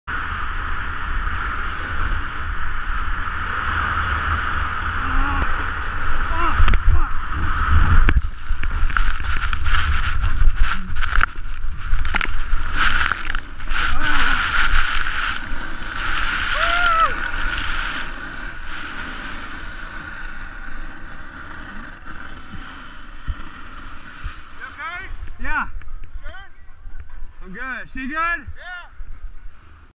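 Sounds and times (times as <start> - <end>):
wind buffeting microphone: 6.0 - 20.7
skis scraping icy snow: 8.2 - 25.1
person crying out: 16.4 - 17.8.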